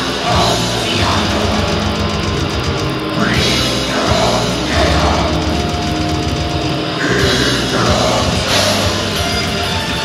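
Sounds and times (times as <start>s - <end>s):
distorted guitars: 0.0s - 10.0s
fast dense drumming: 0.0s - 10.0s.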